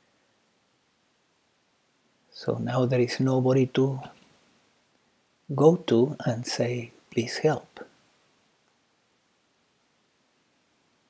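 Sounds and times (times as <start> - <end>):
faint hiss: 0.0 - 11.0.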